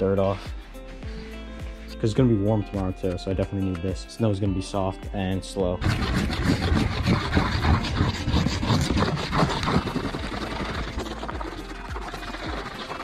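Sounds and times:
wax stick rubbing on snowboard: 5.8 - 11.0.

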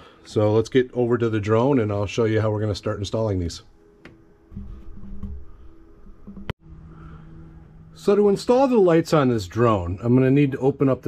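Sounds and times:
low hum: 3.7 - 10.3.

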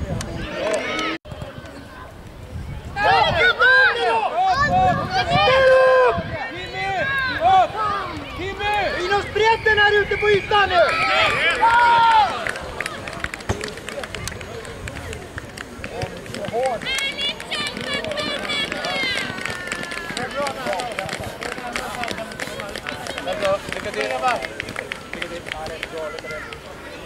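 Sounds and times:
children calling and chattering: 0.0 - 15.9, 16.8 - 27.0
adults talking: 0.0 - 27.0.

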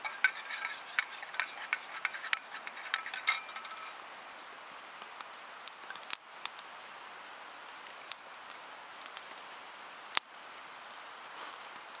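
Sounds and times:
metal spoon clinking in metal cup: 0.0 - 3.9.

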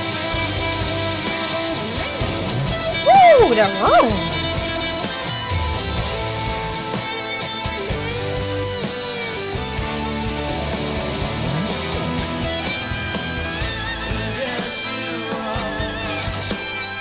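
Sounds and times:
live rock band: 0.0 - 17.0
electric guitar solo: 3.0 - 4.5.

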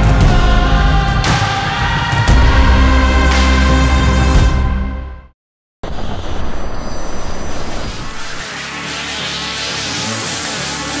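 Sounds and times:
music: 0.0 - 5.4, 8.4 - 11.0
loud rushing and rumbling noise: 5.8 - 11.0.

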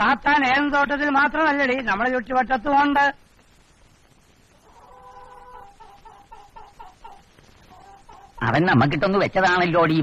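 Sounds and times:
faint bird calls: 4.6 - 8.5.

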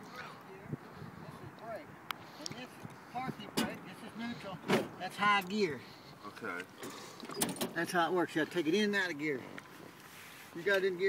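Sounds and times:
short clunks: 4.6 - 5.0, 6.8 - 7.9.

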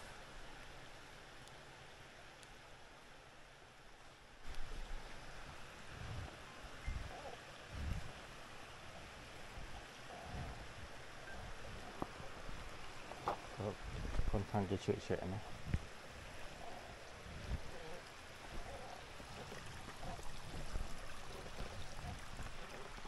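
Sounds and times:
stream water rushing: 0.0 - 23.0.

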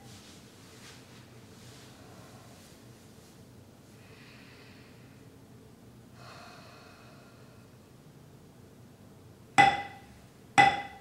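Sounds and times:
man breathing slowly: 3.9 - 5.3, 6.2 - 7.8.

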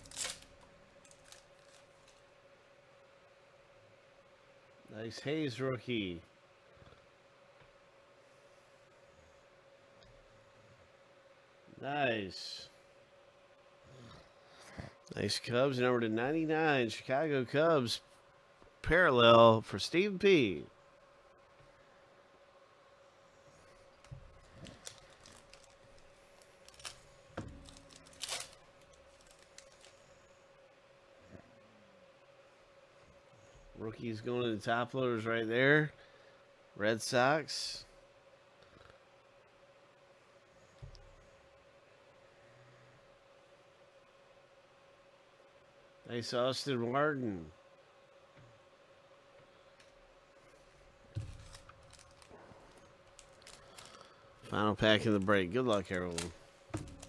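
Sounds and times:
foil wrapper crinkle: 0.0 - 2.3, 23.6 - 30.2, 50.5 - 57.0
faint steady hum: 0.0 - 57.0.

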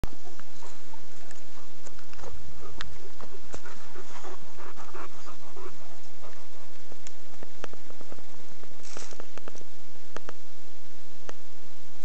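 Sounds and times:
dog panting: 0.5 - 7.0.

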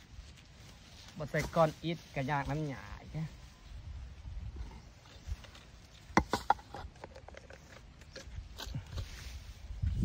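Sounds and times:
scraping of soil and grass: 0.0 - 10.0.

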